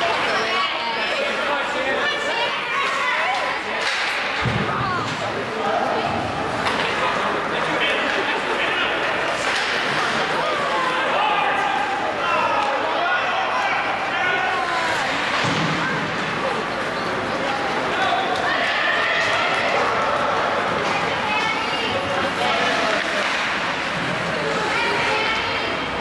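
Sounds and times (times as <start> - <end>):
people shouting and calling: 0.0 - 16.6, 17.4 - 26.0
hockey sticks and puck knocking: 9.0 - 10.4, 22.2 - 24.4.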